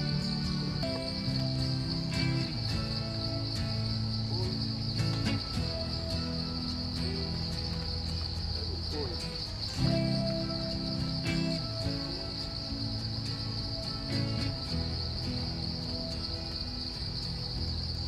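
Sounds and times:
background music low notes: 0:00.0 - 0:18.0
insect chorus drone: 0:00.0 - 0:18.0.

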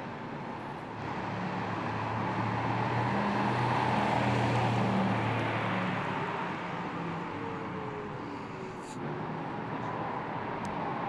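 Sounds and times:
car passing by: 0:01.0 - 0:09.0.

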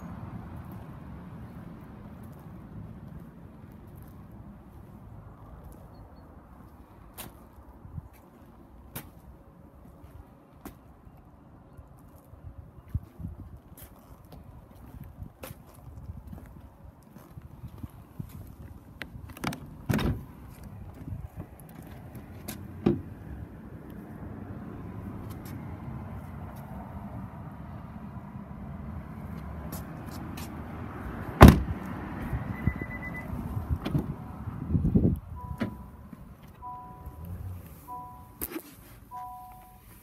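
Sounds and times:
car door clunks and knocks: 0:19.4 - 0:20.3, 0:22.8 - 0:23.1, 0:31.4 - 0:31.8, 0:33.8 - 0:34.1
car door slamming: 0:19.4 - 0:20.3, 0:31.4 - 0:31.8
short electronic beeps: 0:32.5 - 0:33.4, 0:35.4 - 0:36.0, 0:36.6 - 0:37.2, 0:37.8 - 0:38.4, 0:39.1 - 0:40.0.

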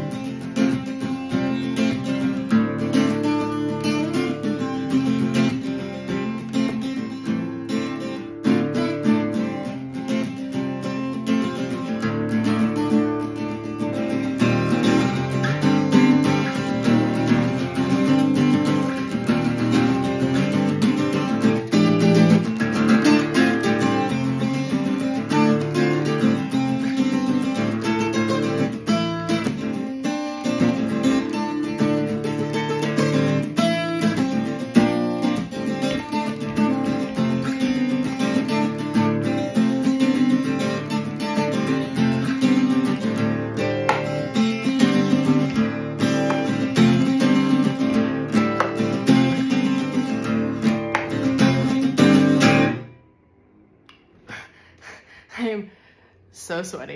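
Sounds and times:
fingerstyle acoustic guitar: 0:00.0 - 0:53.2.

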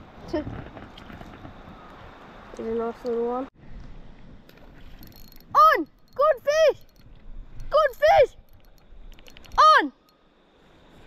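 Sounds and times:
fishing reel clicking: 0:05.0 - 0:09.6
person shouting: 0:09.6 - 0:10.0.

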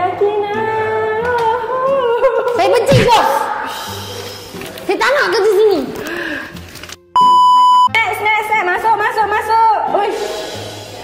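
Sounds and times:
electronic censor bleep: 0:07.2 - 0:08.0.

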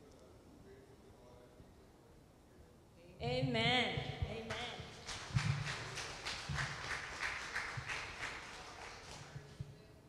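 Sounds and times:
footsteps: 0:03.2 - 0:09.9.

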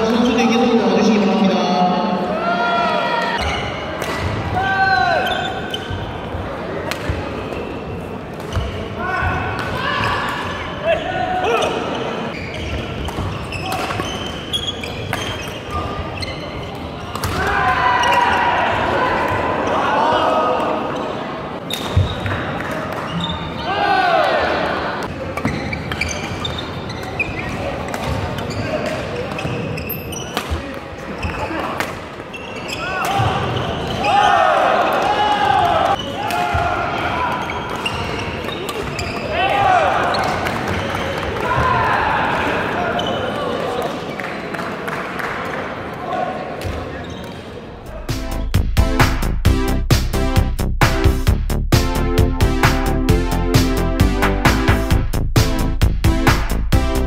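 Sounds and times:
sneakers squeaking on floor: 0:03.3 - 0:04.4, 0:05.1 - 0:17.4, 0:21.0 - 0:23.6, 0:25.0 - 0:34.5, 0:35.9 - 0:41.7, 0:42.8 - 0:44.5, 0:46.6 - 0:48.6.

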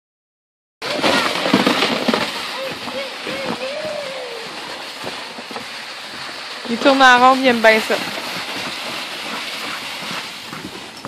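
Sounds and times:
shovel scraping across crusty snow: 0:00.8 - 0:11.0.

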